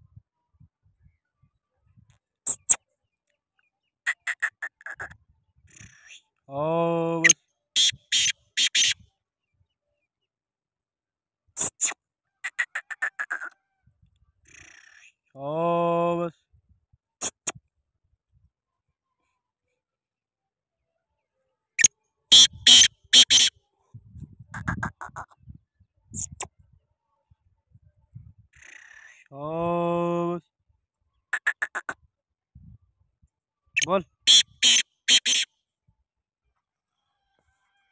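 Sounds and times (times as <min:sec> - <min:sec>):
bird calling harsh notes: 0:07.2 - 0:09.0, 0:22.3 - 0:23.5, 0:33.8 - 0:35.5.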